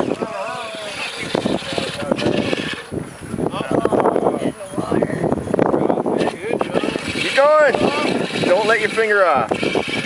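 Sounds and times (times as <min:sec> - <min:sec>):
toy car motor: 0:00.0 - 0:02.9, 0:06.2 - 0:10.0
water churning: 0:00.0 - 0:10.0.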